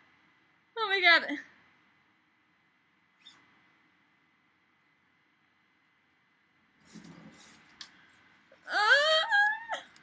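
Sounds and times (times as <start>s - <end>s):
faint high-pitched squeak: 3.2s - 3.5s.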